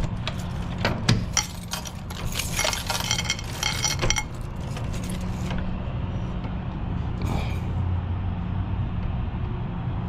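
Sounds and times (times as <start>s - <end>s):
low engine rumble: 0.0s - 10.0s.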